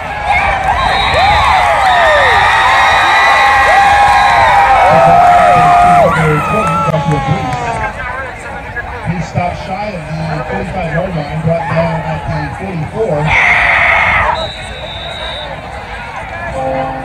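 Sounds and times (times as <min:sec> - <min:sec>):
crowd cheering and screaming: 0:00.0 - 0:08.0, 0:11.4 - 0:17.0.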